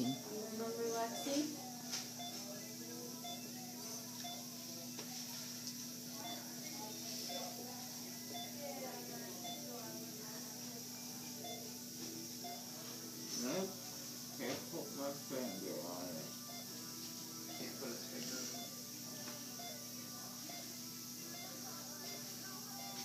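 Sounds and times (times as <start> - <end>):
faint background music: 0.0 - 23.0
low indistinct voices: 0.0 - 23.0.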